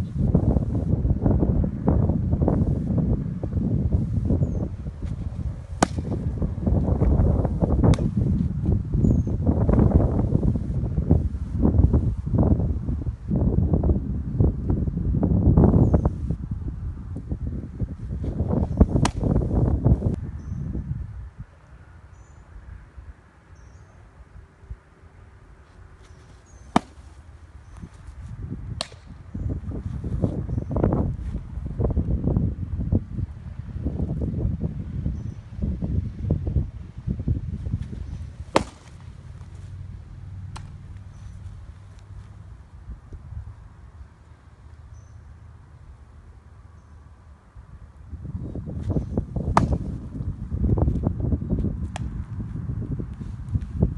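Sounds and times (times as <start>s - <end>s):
wind rumbling on microphone: 0.0s - 53.9s
baseball popping into mitt: 5.8s - 6.2s, 7.8s - 8.1s, 18.9s - 19.4s, 26.0s - 27.9s, 28.8s - 29.1s, 37.8s - 39.5s, 40.5s - 41.0s, 49.5s - 50.0s, 51.8s - 52.2s.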